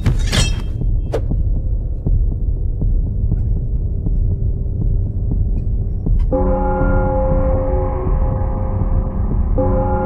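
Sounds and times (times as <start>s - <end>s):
deep rumbling drone: 0.0s - 10.0s.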